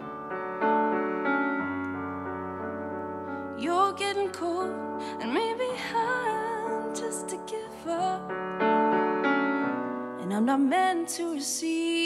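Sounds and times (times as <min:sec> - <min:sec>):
keyboard-like chords: 0:00.0 - 0:10.2.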